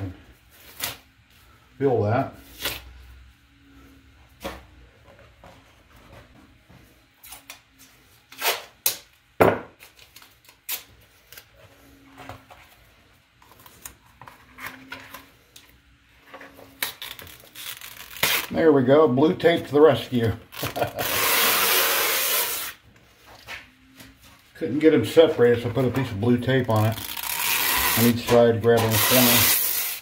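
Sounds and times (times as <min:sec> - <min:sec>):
plastic film crinkling and snapping: 0:16.7 - 0:18.6.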